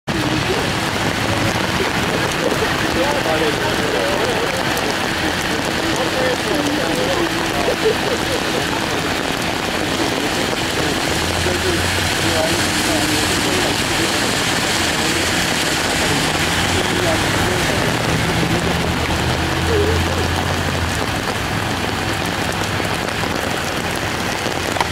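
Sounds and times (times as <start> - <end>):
faint voices: 0.0 - 24.9
steady rain: 0.0 - 24.9
traffic on wet street: 0.0 - 24.9
vehicle engine humming: 0.0 - 24.9.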